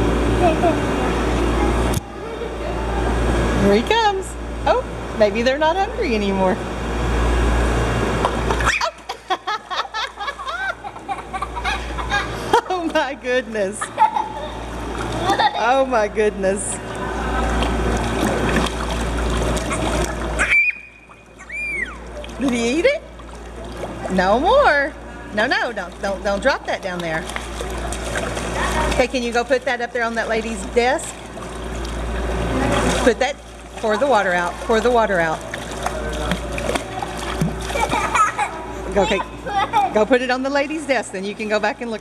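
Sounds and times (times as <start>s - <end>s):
low steady hum: 0.0s - 42.0s
child's voice: 0.4s - 3.0s, 28.6s - 29.0s, 39.0s - 40.0s
water splashing and churning: 8.0s - 42.0s.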